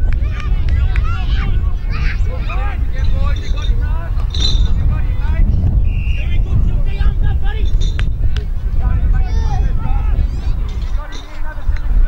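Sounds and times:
distant shouts and calls: 0.0 - 11.7
wind rumble on microphone: 0.0 - 12.0.

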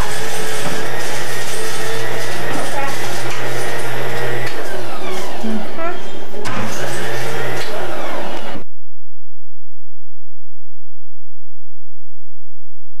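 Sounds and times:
indistinct voices: 0.0 - 8.6.

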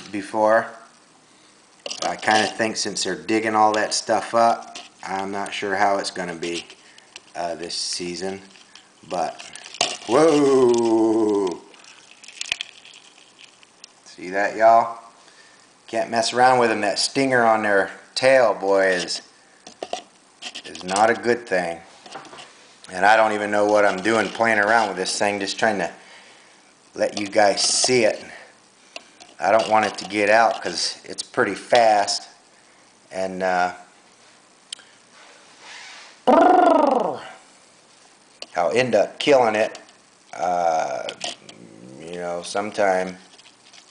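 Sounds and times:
soft breathy hiss: 0.0 - 43.9
cup handling noise: 1.8 - 2.7, 8.2 - 14.0, 18.8 - 21.2, 41.0 - 41.6.

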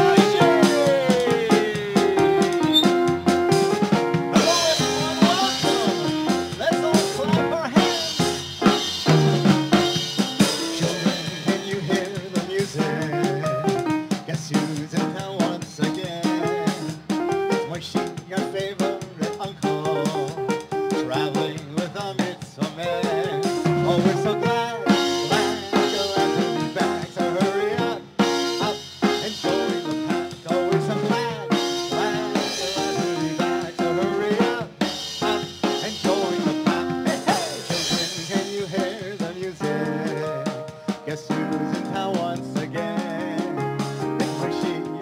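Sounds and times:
bouncing keyboard melody: 0.0 - 45.0
drum kit beat: 0.0 - 45.0.

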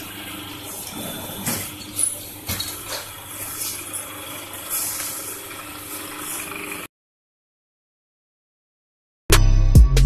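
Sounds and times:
low motor and pump hum: 0.0 - 6.9.

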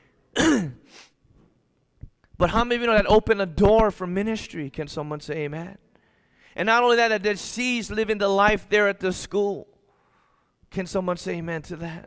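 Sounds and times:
man clearing his throat: 0.3 - 1.1.

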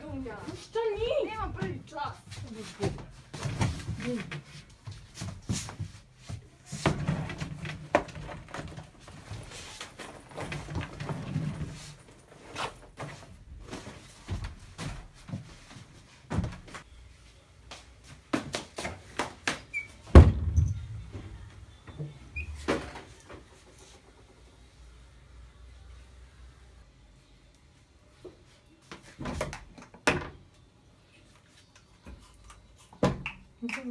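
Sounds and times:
loud thump: 20.1 - 21.4.

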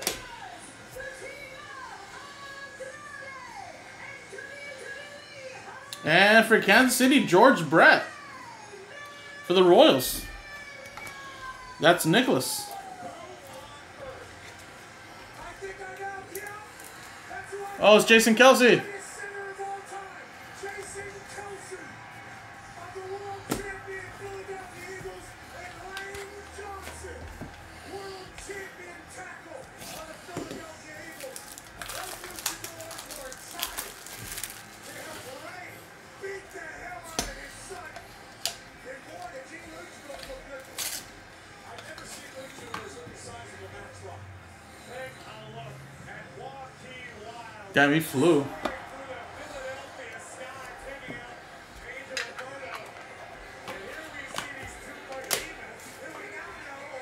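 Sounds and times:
paper wrapper crinkling and tearing: 29.7 - 36.4, 37.7 - 41.2.

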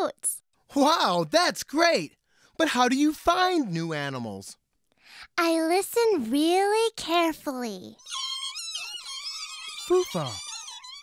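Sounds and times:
fox pups squeaking: 8.0 - 11.0.

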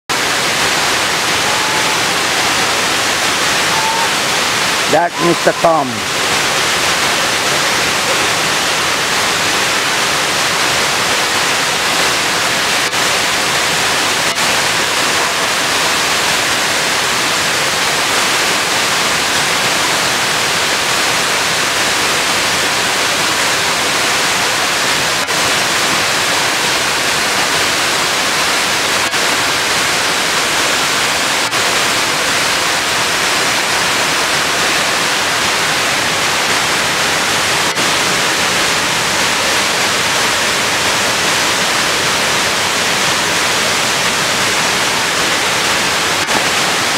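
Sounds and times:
waterfall cascading over rock: 0.1 - 46.9.

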